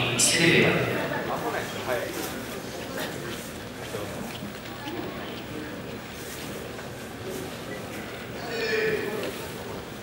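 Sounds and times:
arena hall background noise: 0.0s - 10.0s.

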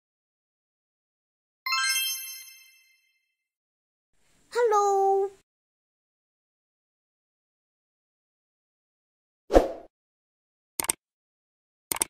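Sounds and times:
bright chime: 1.7s - 3.2s.

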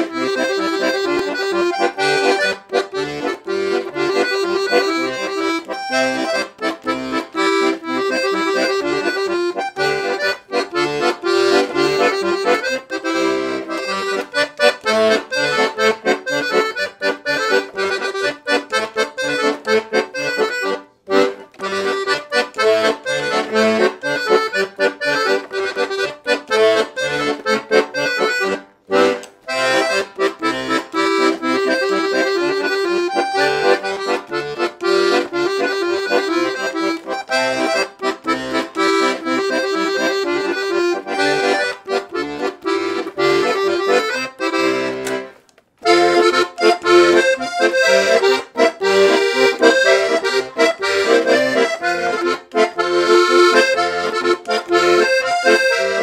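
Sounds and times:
accordion playing a tune: 0.0s - 56.0s.

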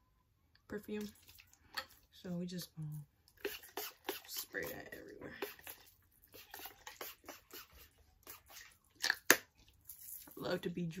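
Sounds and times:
perfume bottle spraying: 3.4s - 4.8s, 5.4s - 8.5s.

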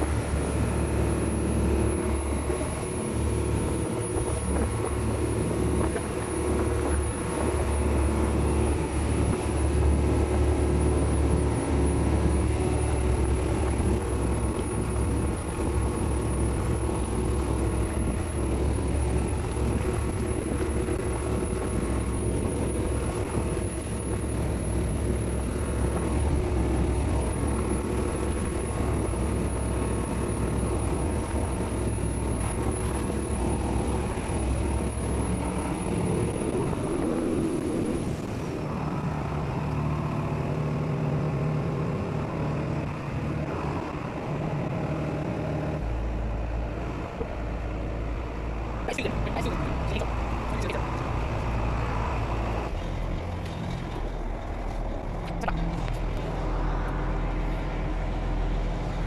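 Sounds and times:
thin high whine: 0.0s - 39.6s
boat engine running: 0.0s - 59.0s
water rushing along hull: 0.0s - 59.0s.

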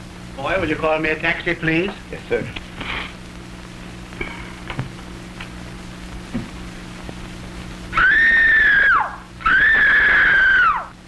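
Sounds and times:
woman screaming: 8.0s - 10.9s.

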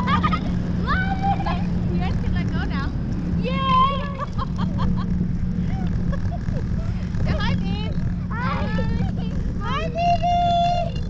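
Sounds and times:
boat engine humming: 0.0s - 11.0s
people talking and calling: 0.0s - 11.0s.

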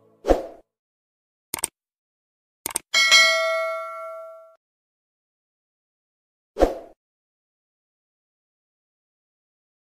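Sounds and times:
quick clicks: 1.5s - 1.8s, 2.6s - 2.9s
bell-like ding ringing: 3.0s - 4.6s.

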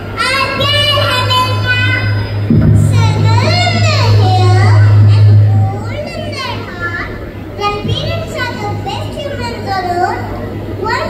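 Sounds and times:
loud low hum: 0.0s - 10.8s
girl's voice through microphone: 0.1s - 11.0s.

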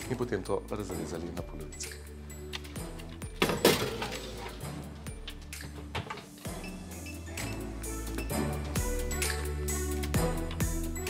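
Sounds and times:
background music: 0.0s - 11.0s
metal baking tray clatter: 3.4s - 4.6s.

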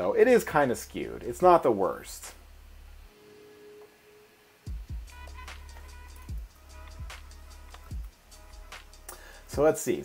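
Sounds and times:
electronic music held tone: 0.4s - 10.0s
deep kick drum beats: 4.7s - 9.7s.

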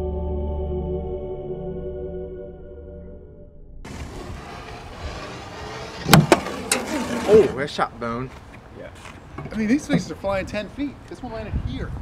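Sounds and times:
soft ambient music: 0.0s - 3.5s.

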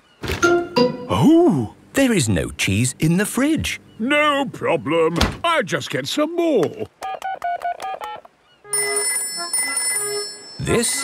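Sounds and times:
telephone ringing: 8.1s - 11.0s.

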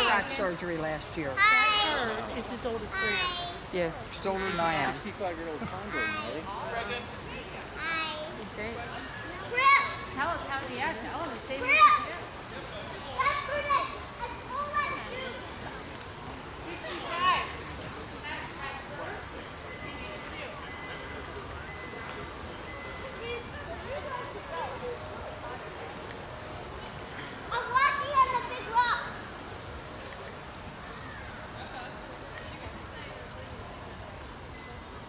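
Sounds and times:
children calling and talking: 0.0s - 35.0s.

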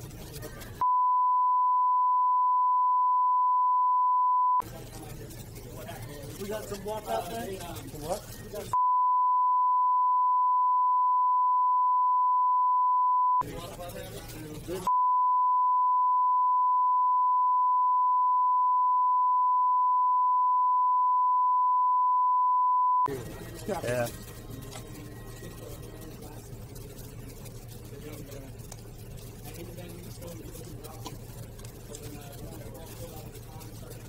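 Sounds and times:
voices: 0.0s - 0.8s, 4.6s - 8.8s, 13.4s - 14.9s, 23.1s - 34.0s
censor bleep tone: 0.8s - 4.6s, 8.8s - 13.4s, 14.9s - 23.1s.

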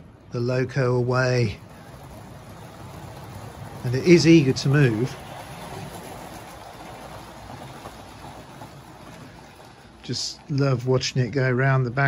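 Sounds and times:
model train rumbling on rails: 0.0s - 12.0s.

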